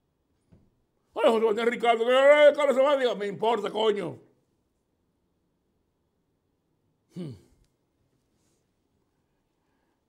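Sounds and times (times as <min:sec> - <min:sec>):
man sighing: 0:07.1 - 0:07.6.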